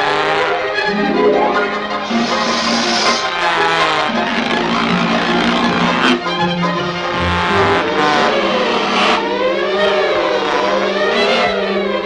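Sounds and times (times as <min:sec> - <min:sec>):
orchestral cartoon music: 0:00.8 - 0:03.9.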